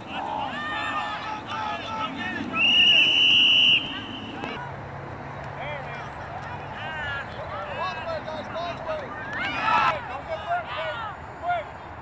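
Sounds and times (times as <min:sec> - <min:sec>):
spectators and coaches shouting: 0:00.0 - 0:04.8, 0:05.6 - 0:12.0
referee's whistle blast: 0:02.6 - 0:04.4.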